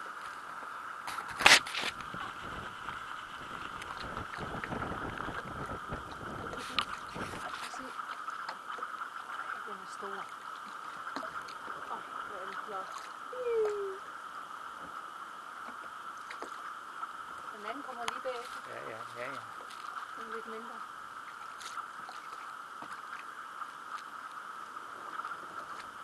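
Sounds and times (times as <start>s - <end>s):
steady mid-pitched hum: 0.0s - 26.0s
water noise: 0.0s - 26.0s
wind: 0.0s - 26.0s.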